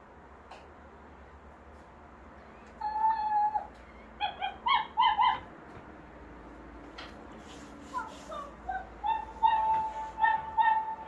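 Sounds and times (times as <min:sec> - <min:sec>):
toy puppy whining: 0:02.8 - 0:05.5, 0:08.3 - 0:11.0
toy puppy yipping: 0:02.8 - 0:05.5, 0:08.4 - 0:11.0.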